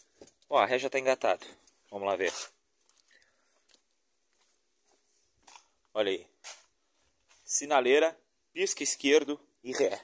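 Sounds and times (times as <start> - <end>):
man speaking: 0.5 - 2.5, 7.5 - 10.0
footsteps on stone paving: 3.6 - 5.8.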